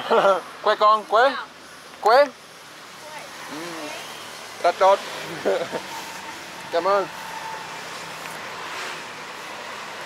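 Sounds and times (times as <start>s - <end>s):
road traffic passing: 0.0s - 10.0s
vehicle passing close: 3.2s - 10.0s.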